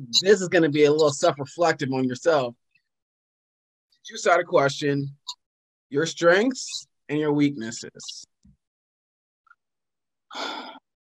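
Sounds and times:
person sighing: 0:10.3 - 0:10.8.

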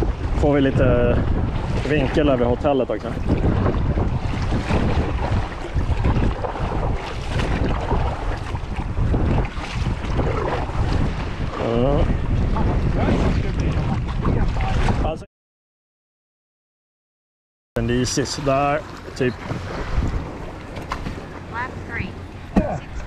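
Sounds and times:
sea water lapping around kayak: 0:00.0 - 0:15.2, 0:17.8 - 0:23.0
wind buffeting microphone: 0:00.0 - 0:15.3, 0:18.6 - 0:23.0.

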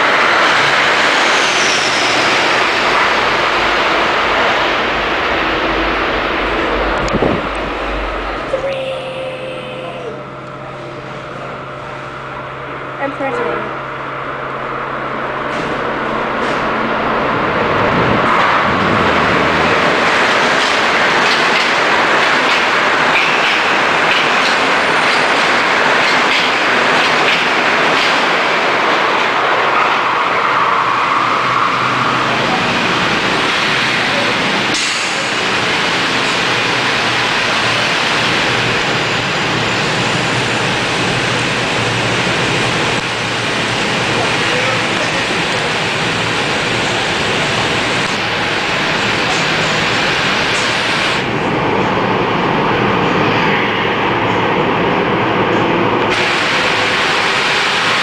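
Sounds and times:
electric train running on rails: 0:00.0 - 0:58.0.

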